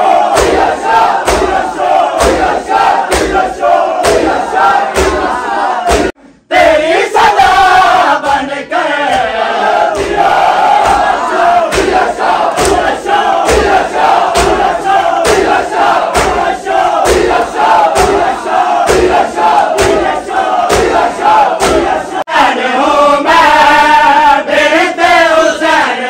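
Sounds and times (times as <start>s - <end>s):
men chanting in unison: 0.0s - 26.0s
hands slapping chests: 0.3s - 6.2s, 9.9s - 22.0s.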